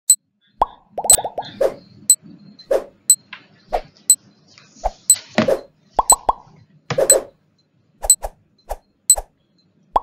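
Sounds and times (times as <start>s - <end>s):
cartoon plop: 6.0s - 6.4s.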